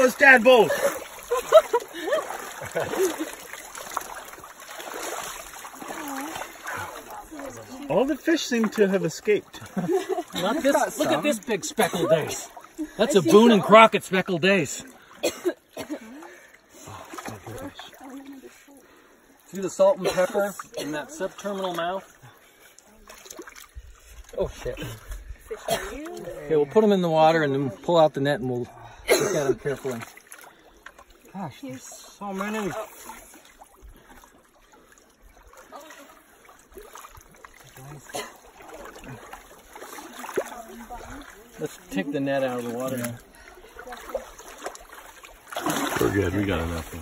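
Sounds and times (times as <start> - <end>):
shallow water splashing: 0.0 - 47.0.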